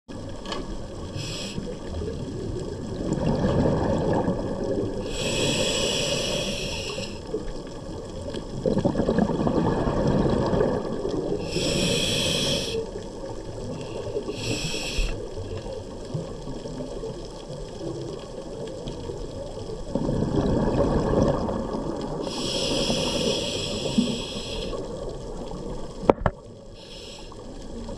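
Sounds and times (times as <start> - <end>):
rumble of exhaled bubbles: 0.1 - 26.8
hissing regulator inhalations: 1.1 - 1.8, 5.0 - 7.3, 11.4 - 13.0, 13.8 - 15.3, 22.2 - 24.9, 26.7 - 27.6.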